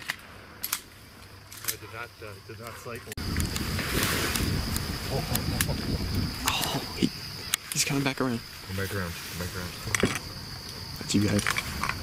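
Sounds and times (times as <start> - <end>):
wind rumble on microphone: 3.2 - 7.4.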